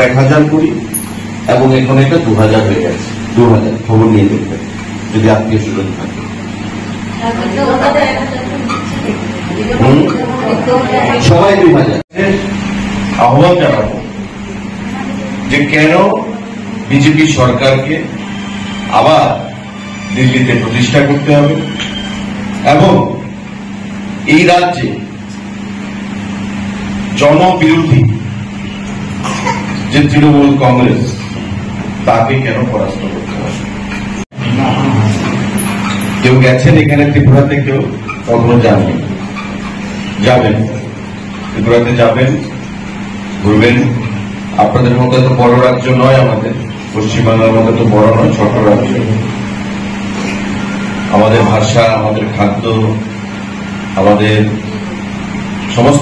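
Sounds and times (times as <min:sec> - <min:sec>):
room noise: 0:00.0 - 0:56.0
steady low hum: 0:00.0 - 0:56.0.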